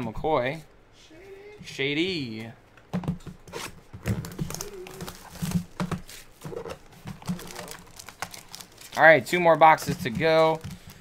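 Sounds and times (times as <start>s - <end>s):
plastic wrap and foil crinkling: 4.0s - 11.0s.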